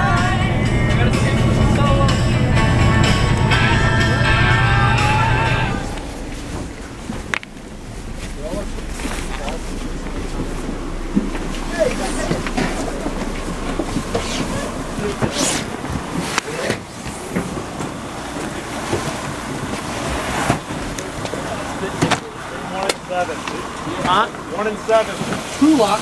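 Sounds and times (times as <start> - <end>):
bus engine running: 0.0 - 26.0
indistinct voices: 0.0 - 26.0.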